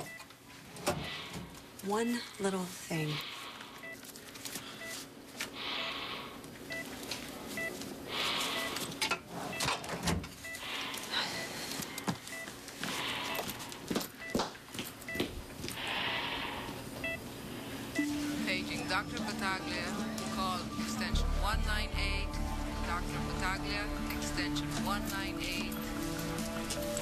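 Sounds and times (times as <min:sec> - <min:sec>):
patient monitor beeping: 0:00.0 - 0:00.3, 0:02.5 - 0:27.0
ventilator hissing: 0:07.3 - 0:09.5, 0:15.4 - 0:18.7.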